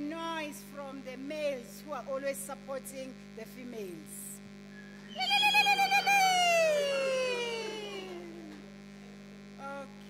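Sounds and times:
woman ululating: 0:05.1 - 0:08.6.

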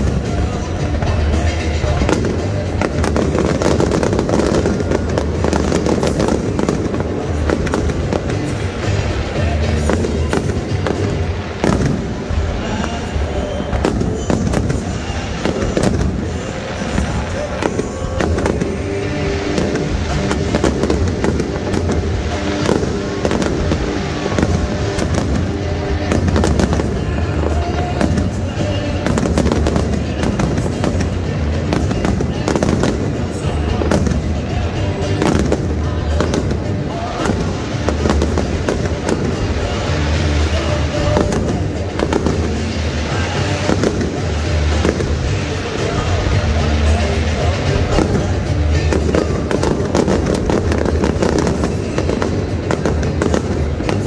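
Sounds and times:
fireworks bursting: 0:00.0 - 0:54.0
music playing: 0:00.0 - 0:54.0.

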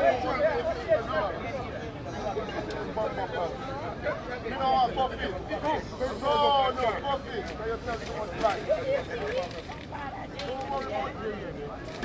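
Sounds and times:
people talking: 0:00.0 - 0:12.0.

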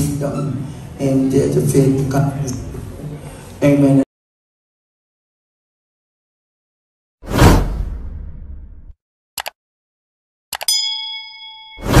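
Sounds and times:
notification bell ding: 0:10.6 - 0:12.0.

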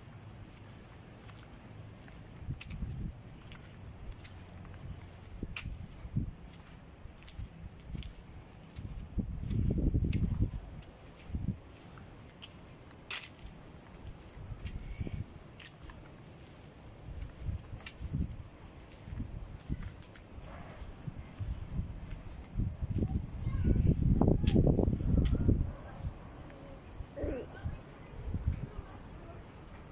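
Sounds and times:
footsteps: 0:00.4 - 0:23.2
wind gusting on microphone: 0:02.4 - 0:11.7, 0:14.3 - 0:15.4, 0:17.0 - 0:29.2.

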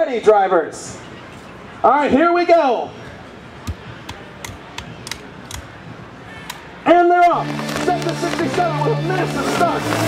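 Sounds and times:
steady background noise: 0:00.0 - 0:10.0
sharp clicks: 0:03.7 - 0:05.7.

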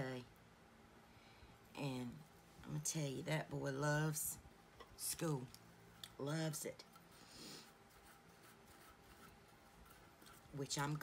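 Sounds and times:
soft rubbing: 0:05.2 - 0:11.0.

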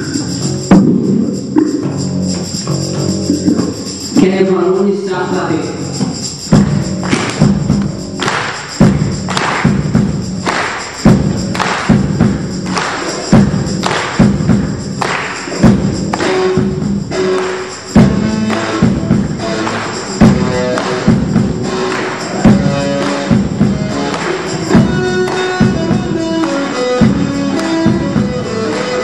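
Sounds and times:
rock band playing: 0:00.0 - 0:04.2, 0:05.7 - 0:29.0
steady drum beat: 0:00.0 - 0:29.0.

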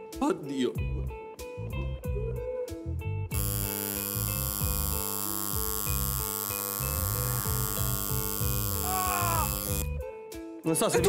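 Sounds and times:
background music with bass line: 0:00.8 - 0:11.0
tattoo machine buzzing: 0:03.3 - 0:09.9
person crying out in pain: 0:08.8 - 0:09.6.

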